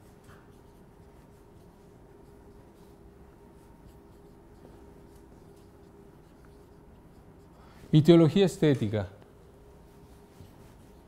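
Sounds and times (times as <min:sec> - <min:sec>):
marker scratching on whiteboard: 0:00.0 - 0:07.6, 0:09.8 - 0:11.0
man speaking: 0:07.9 - 0:09.2.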